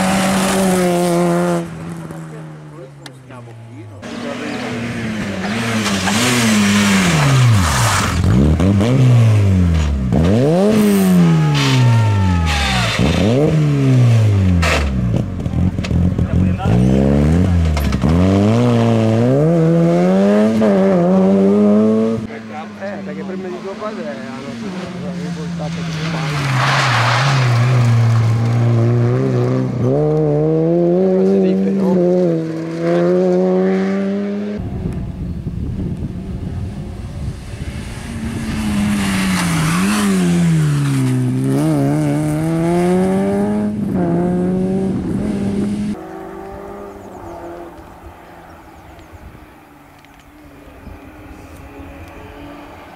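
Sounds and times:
rally car engine revving hard: 0.0 - 2.0, 4.0 - 34.6, 37.6 - 47.8.

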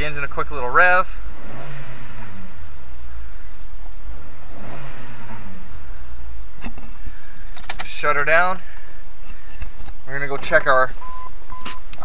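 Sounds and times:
car engine idling and revving: 0.0 - 12.0.

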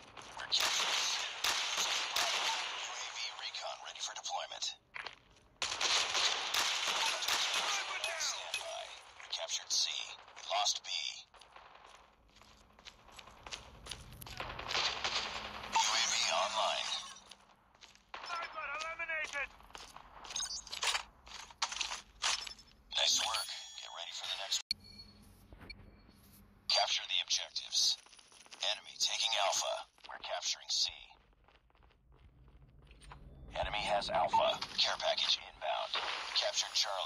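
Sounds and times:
rapid video game gunfire: 0.0 - 4.1, 5.6 - 17.1, 18.1 - 22.0, 33.6 - 37.0.

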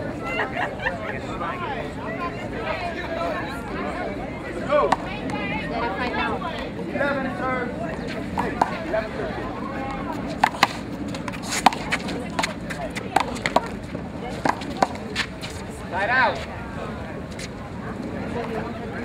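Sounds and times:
murmuring voices: 0.0 - 19.0.

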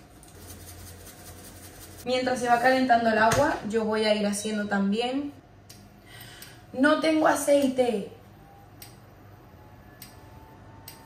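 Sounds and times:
induction hob humming: 5.4 - 11.0.

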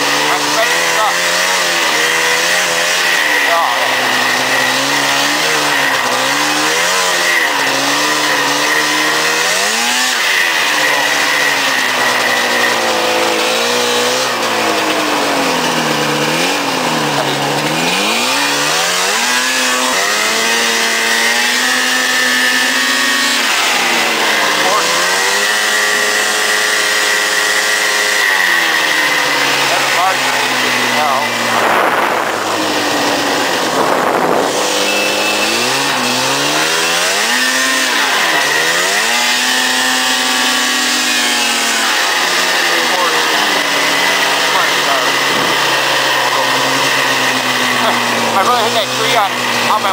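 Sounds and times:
snowmobile engine revving: 0.0 - 49.9
steady high whine: 0.0 - 49.9.

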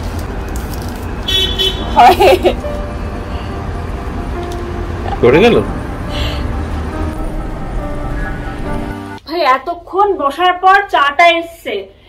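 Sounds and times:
city traffic rumble: 0.0 - 11.4
car horn toot: 1.2 - 2.0.

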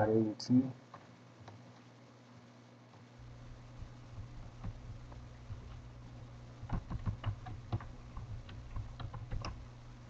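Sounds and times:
computer keyboard typing: 3.4 - 10.0.

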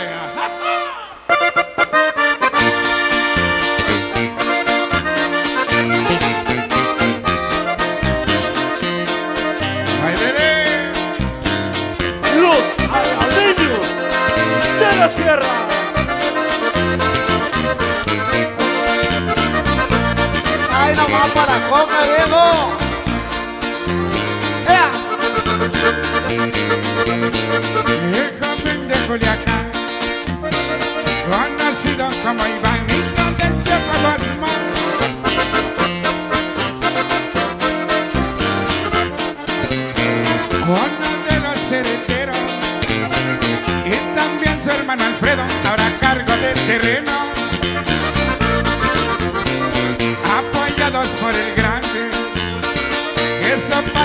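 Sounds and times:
accordion melody: 0.0 - 54.0
bass line: 0.0 - 54.0
guitar chords: 0.0 - 54.0.

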